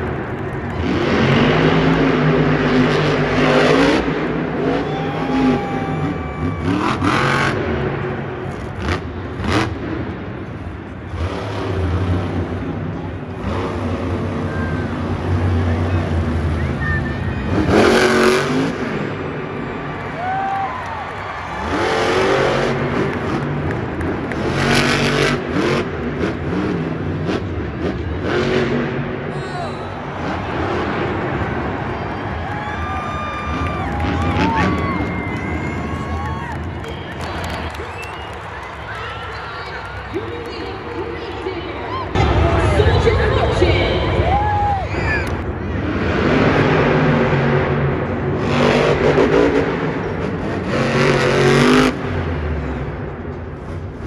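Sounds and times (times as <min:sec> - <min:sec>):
monster truck engine revving: 0:00.0 - 0:54.0.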